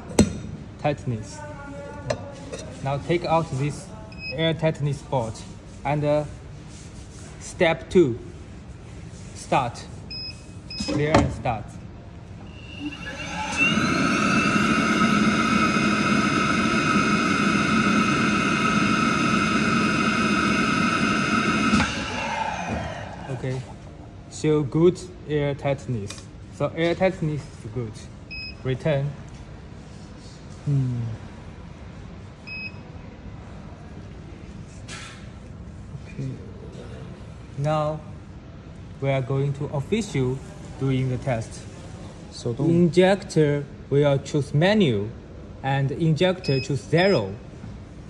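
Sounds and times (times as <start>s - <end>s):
low background noise: 0.0s - 13.7s, 22.2s - 48.0s
suction fan whining: 12.2s - 24.0s
short electronic beep: 12.4s - 15.6s.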